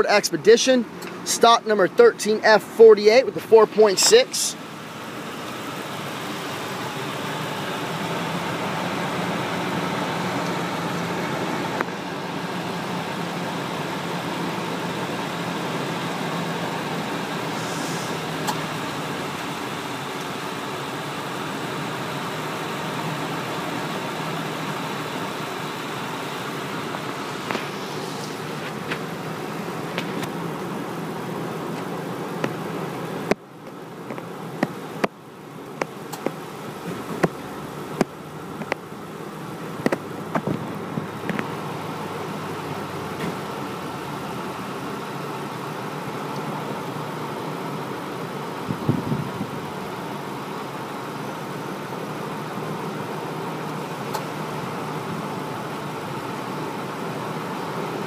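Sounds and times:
car engine idling: 0.0 - 58.0.

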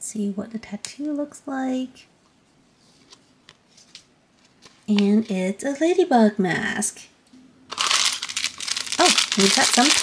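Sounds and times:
plastic wrapper crinkling: 7.7 - 10.0.

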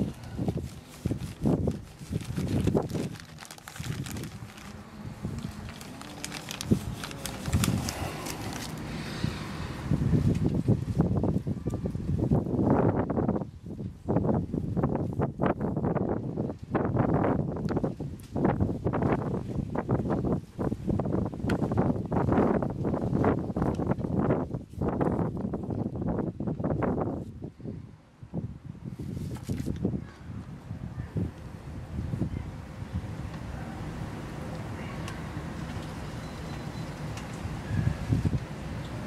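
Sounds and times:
thin plastic pots crackling: 0.0 - 9.0
hands rustling in soil: 0.0 - 9.2, 28.9 - 29.9.

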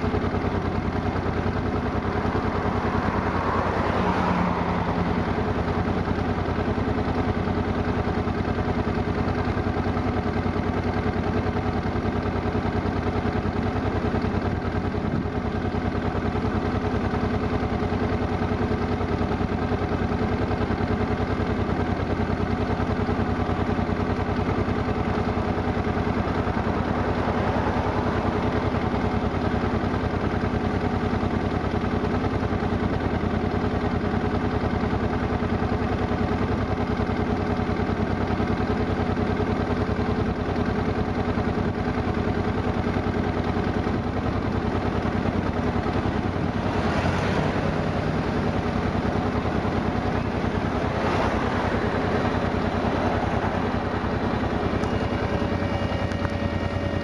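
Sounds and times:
pulsing machine drone: 0.0 - 33.2, 34.3 - 57.0.

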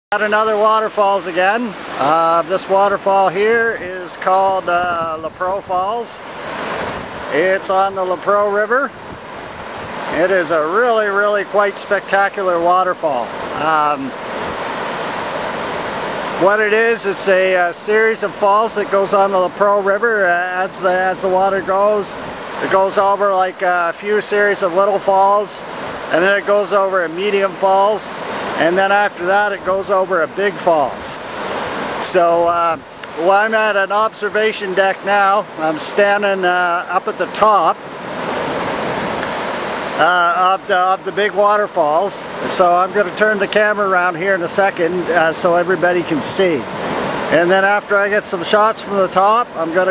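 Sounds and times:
waterfall rushing: 0.1 - 49.9.

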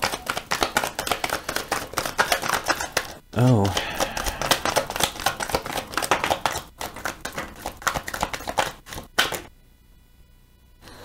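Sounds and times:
cards shuffled by hand: 0.0 - 9.5.

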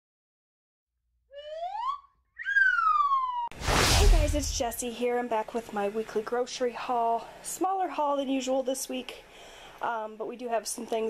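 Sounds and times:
wolf whistle: 1.4 - 3.5
loud whoosh: 3.5 - 4.8.

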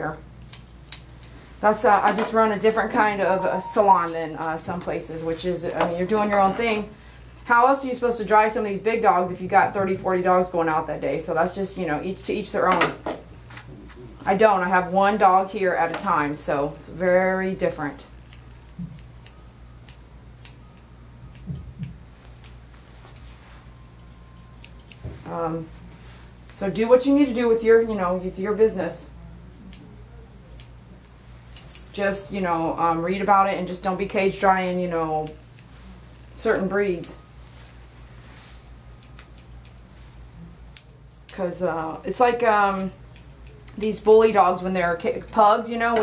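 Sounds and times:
steady low hum: 0.0 - 46.0
shears snipping dog's coat: 18.2 - 25.6, 34.5 - 44.3.

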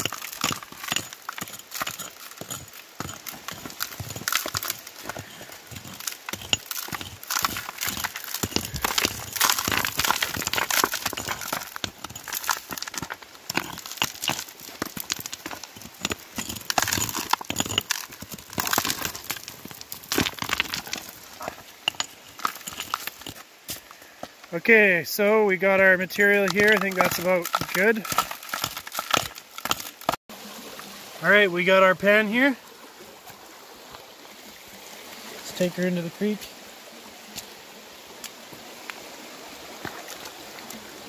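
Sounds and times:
rock pick striking gravel: 0.0 - 24.0, 25.8 - 30.2
stones and grit rattling: 0.0 - 30.2, 39.8 - 40.8.

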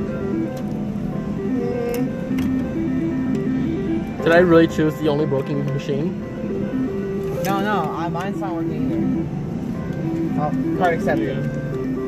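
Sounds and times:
melody of held notes: 0.0 - 12.0.

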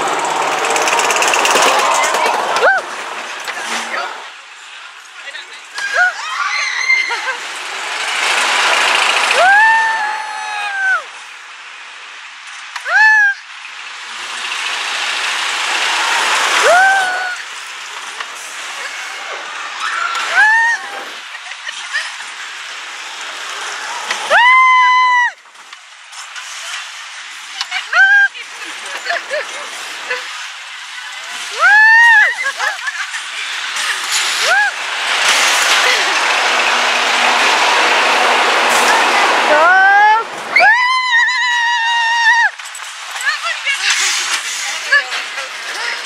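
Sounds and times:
riders screaming: 0.0 - 4.3, 5.8 - 11.3, 12.8 - 13.6, 15.8 - 17.7, 18.6 - 22.2, 23.6 - 25.5, 27.6 - 46.0
roller coaster car on track: 0.0 - 46.0.

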